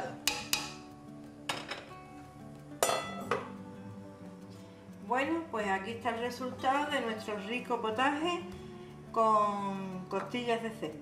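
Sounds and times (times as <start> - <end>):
soft background music: 0.0 - 11.0
ladle clinking on metal pot: 0.2 - 0.8, 2.8 - 3.5.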